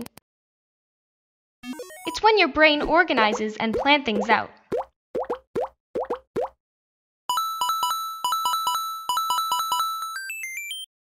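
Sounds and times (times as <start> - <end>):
cartoon bloop pops: 3.1 - 6.6
bell-like synth jingle: 7.3 - 10.8.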